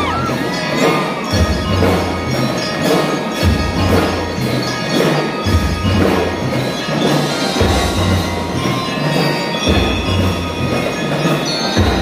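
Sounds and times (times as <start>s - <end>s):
mallet keyboard instruments ringing: 0.0s - 12.0s.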